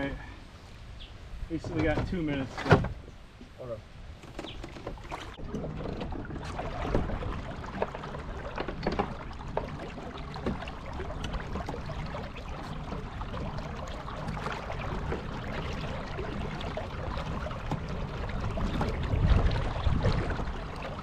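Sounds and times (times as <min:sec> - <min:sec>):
water swishing along hull: 0:00.0 - 0:21.0
knocks from boat: 0:01.6 - 0:03.0, 0:04.2 - 0:13.6.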